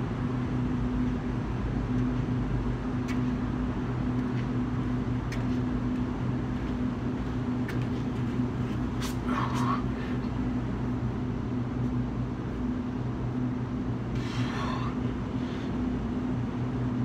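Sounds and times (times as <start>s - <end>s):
mechanical hum: 0.0s - 17.0s
scuffing on concrete: 1.9s - 9.8s.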